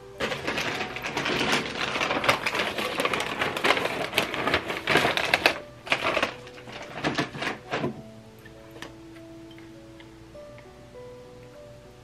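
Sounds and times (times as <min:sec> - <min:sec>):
plastic bag crinkling: 0:00.0 - 0:08.0.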